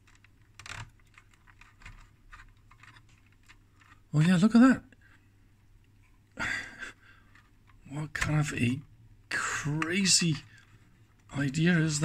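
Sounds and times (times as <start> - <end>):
small clicks and light rattles: 0.0 - 4.1, 7.1 - 8.5.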